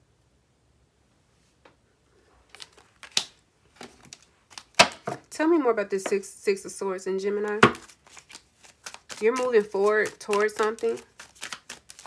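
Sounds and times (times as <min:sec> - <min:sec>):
cards clicking and slapping: 0:02.5 - 0:05.2, 0:07.5 - 0:12.0.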